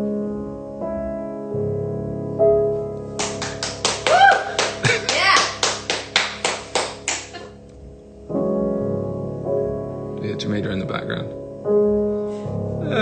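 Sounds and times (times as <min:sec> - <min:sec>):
piano chord: 0:00.0 - 0:13.0
handclaps: 0:03.2 - 0:07.4.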